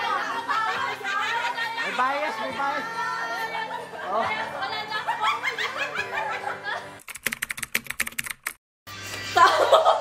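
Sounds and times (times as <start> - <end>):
people laughing loudly: 0.0 - 1.9, 3.7 - 7.0, 9.1 - 10.0.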